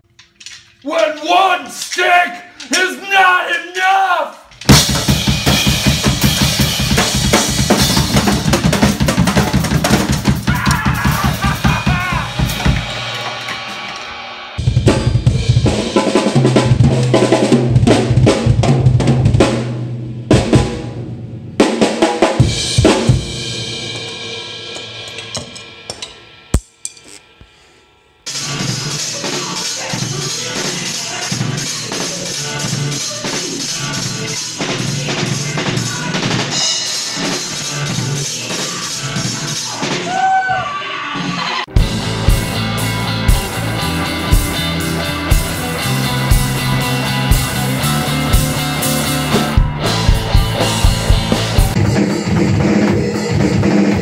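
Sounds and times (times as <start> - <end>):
man shouting: 0.9 - 4.5, 10.4 - 12.4
drum kit played fast: 4.5 - 27.3, 28.3 - 40.2, 41.6 - 54.0.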